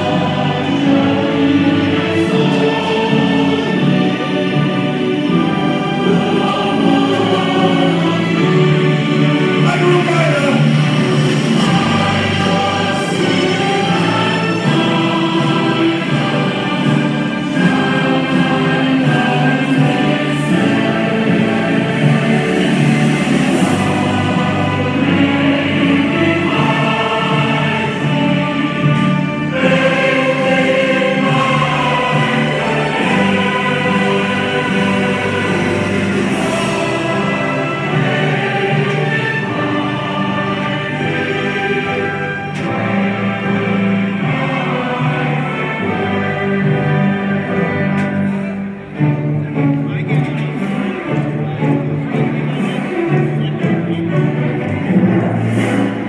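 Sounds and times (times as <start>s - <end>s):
choir singing with music: 0.0s - 56.0s.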